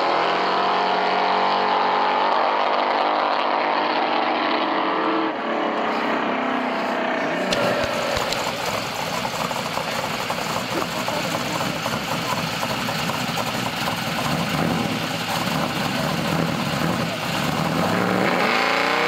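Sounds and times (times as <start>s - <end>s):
car engine idling and revving: 0.0s - 19.0s.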